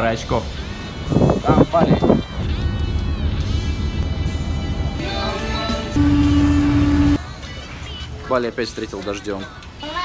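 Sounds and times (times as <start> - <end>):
horn sounding steady note: 5.7 - 7.2
loud low rumbling: 6.0 - 7.2.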